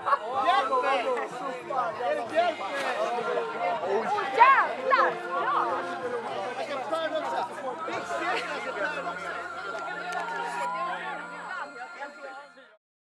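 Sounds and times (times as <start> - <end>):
group chatter: 0.0 - 12.8.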